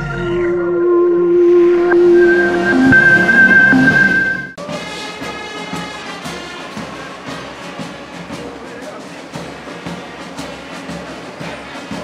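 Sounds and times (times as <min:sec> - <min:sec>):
high electronic tone: 0:00.0 - 0:04.6
whooshing swell: 0:00.4 - 0:04.6.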